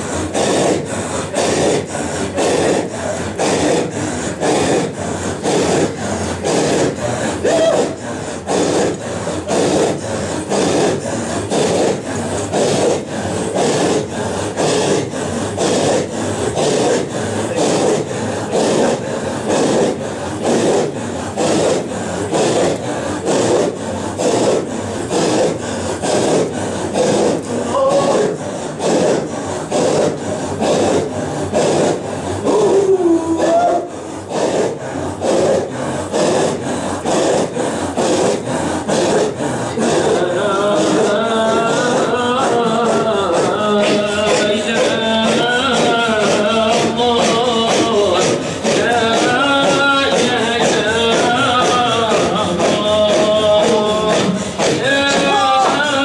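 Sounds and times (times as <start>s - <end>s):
men chanting in unison: 39.2s - 56.0s.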